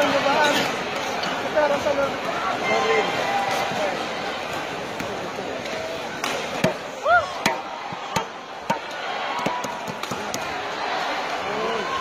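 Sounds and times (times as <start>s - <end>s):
crowd murmur: 0.0s - 12.0s.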